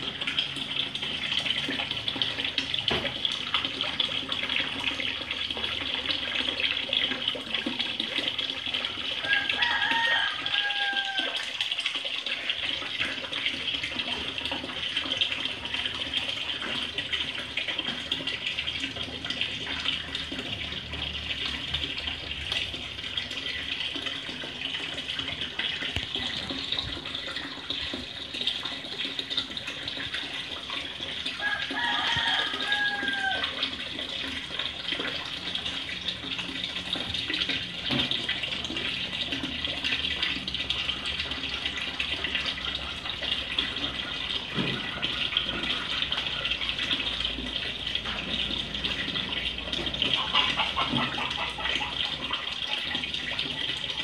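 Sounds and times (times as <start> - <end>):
water splashing in pond: 0.0 - 54.0.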